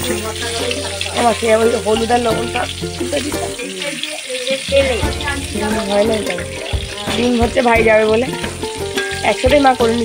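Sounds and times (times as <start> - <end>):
melodic background music: 0.0 - 10.0
potatoes sizzling in oil: 0.0 - 10.0.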